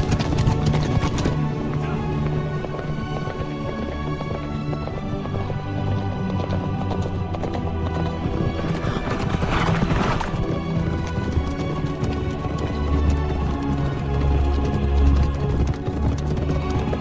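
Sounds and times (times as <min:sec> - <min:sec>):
film score music: 0:00.0 - 0:17.0
horse hoofbeats on dirt road: 0:00.0 - 0:17.0.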